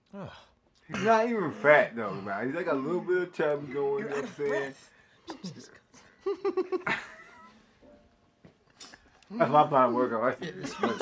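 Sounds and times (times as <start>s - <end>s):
man's wheezy laugh: 5.3s - 7.6s.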